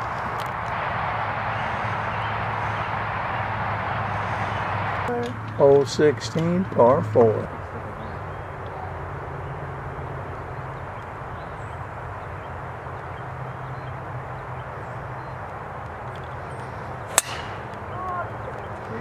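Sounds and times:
low background hum: 0.0s - 19.0s
golf club striking ball: 17.1s - 18.2s.

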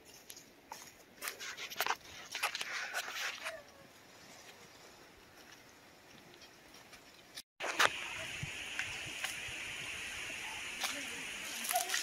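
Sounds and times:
steady high hiss: 7.6s - 12.0s
footsteps on leafy dirt trail: 10.5s - 12.0s.

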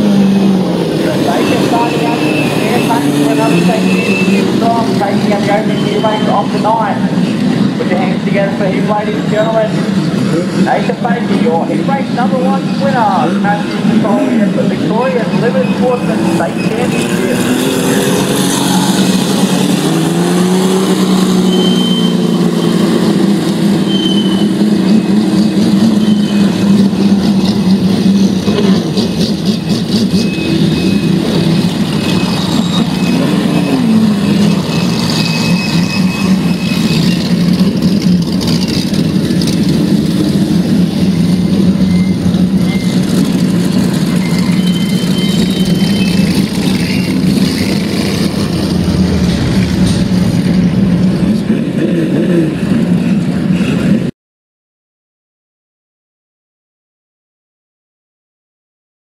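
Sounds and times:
race car engines droning: 0.0s - 54.1s.

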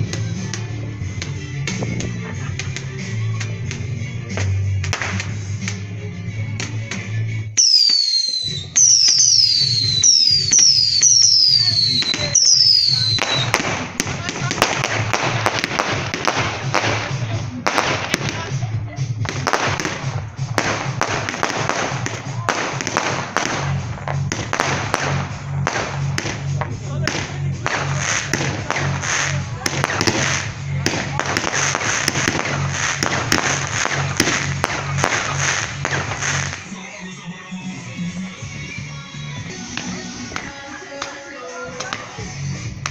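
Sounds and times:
fireworks crackling and popping: 0.0s - 42.9s
music with low beat: 0.0s - 42.9s
firework whistles falling in pitch: 7.6s - 13.5s.

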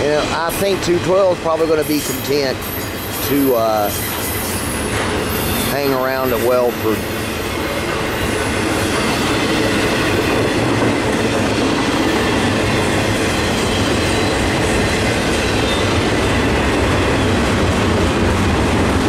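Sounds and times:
train wheels rolling on rail: 0.0s - 19.0s.

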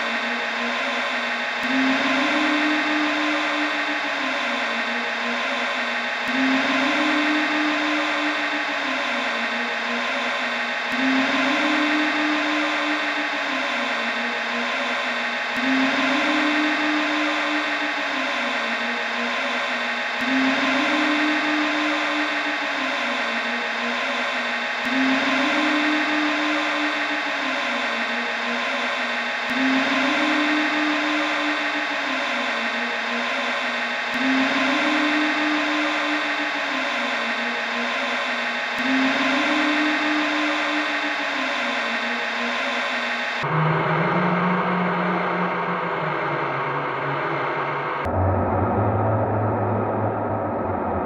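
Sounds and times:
noisy experimental drone: 0.0s - 51.0s
low electronic hum: 43.4s - 51.0s.

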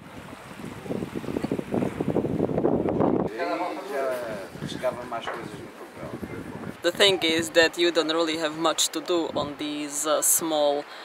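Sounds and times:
wind blowing across microphone: 0.0s - 10.4s.

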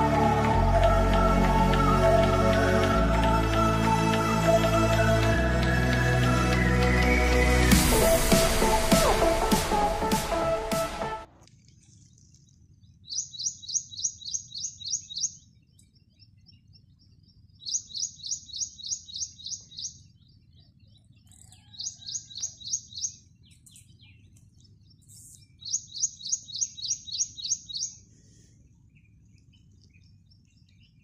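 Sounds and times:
small bird calling: 13.0s - 31.0s.

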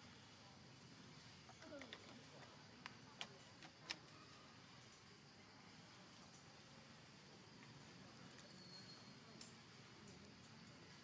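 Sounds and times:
faint outdoor ambience: 0.0s - 11.0s
faint clicks: 9.3s - 10.8s.

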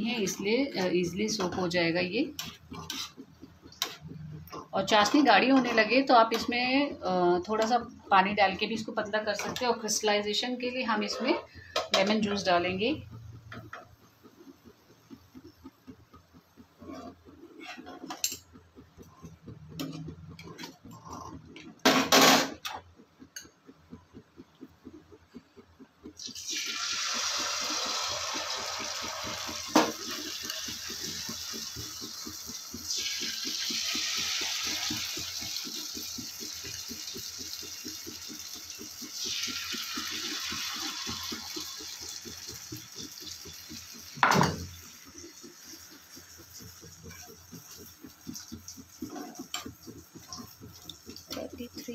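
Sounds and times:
batter sizzling in hot oil: 0.0s - 51.9s
metal spoon clanking on pan: 0.2s - 6.6s, 16.9s - 18.6s.

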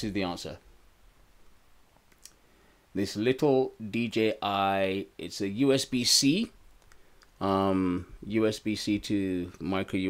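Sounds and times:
faint click: 2.0s - 2.4s, 6.7s - 7.4s.

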